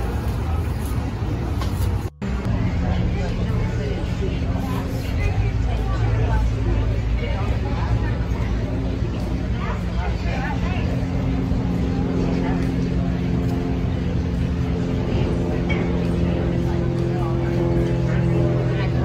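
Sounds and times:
indistinct voices: 0.0 - 19.0
low engine hum: 0.0 - 19.0.

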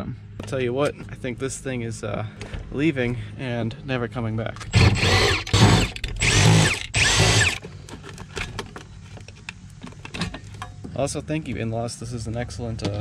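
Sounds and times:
impact driver bursts: 4.7 - 7.6.

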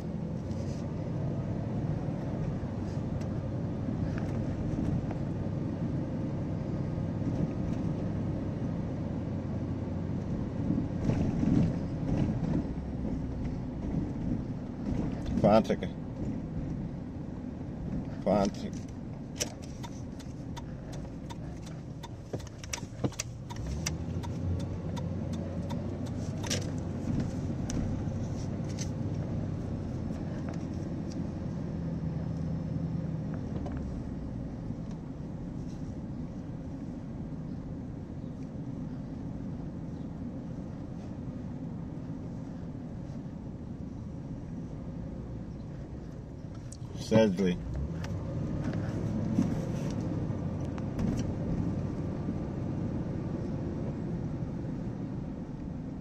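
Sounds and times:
car engine and tyres humming: 0.0 - 56.0.

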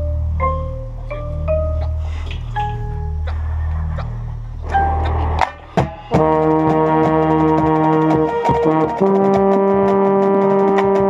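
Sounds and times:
low steady drone: 0.0 - 9.2
quick regular drum strokes: 3.2 - 11.0
brass chord: 4.6 - 11.0.

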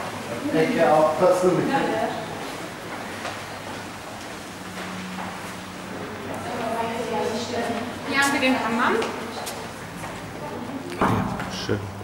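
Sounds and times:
footsteps on stone floor: 2.8 - 5.8.

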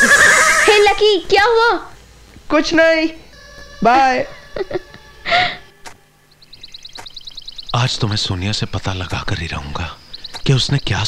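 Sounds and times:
horse whinnying: 0.0 - 1.0.

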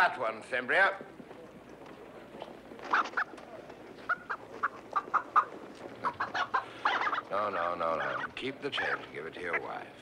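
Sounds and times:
chickens clucking: 2.8 - 9.8.

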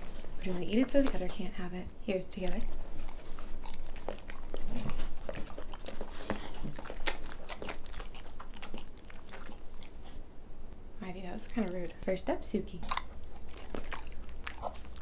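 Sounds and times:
dogs chewing and licking lips: 0.0 - 10.2, 11.2 - 15.0.

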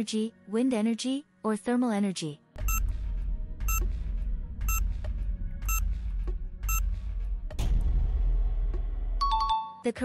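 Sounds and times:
background music with low bass: 2.5 - 9.3.

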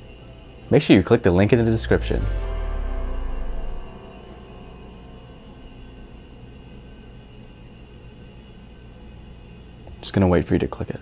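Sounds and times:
low hum with hiss: 1.4 - 7.5.

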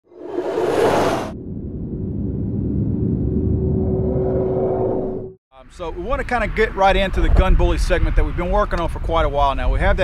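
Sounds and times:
low rumble with hum: 0.8 - 5.4.

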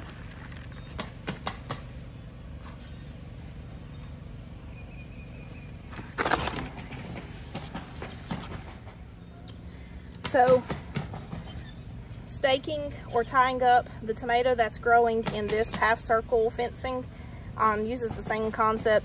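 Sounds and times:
plastic pot handling noise: 0.0 - 1.7, 5.9 - 8.5
low outdoor hum: 0.0 - 19.0.

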